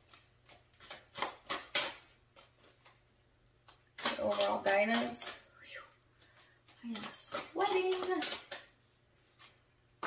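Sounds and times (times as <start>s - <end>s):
cards being shuffled: 0.0s - 5.4s, 6.0s - 10.0s.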